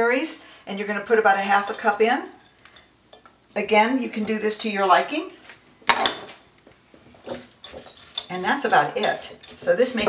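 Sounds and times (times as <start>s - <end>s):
kitchenware clink: 5.9s - 6.3s
utensil scraping glass bowl: 7.2s - 10.0s.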